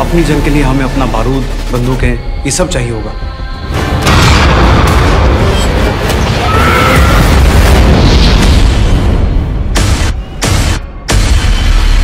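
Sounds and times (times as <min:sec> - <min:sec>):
deep noise and music: 0:00.0 - 0:12.0.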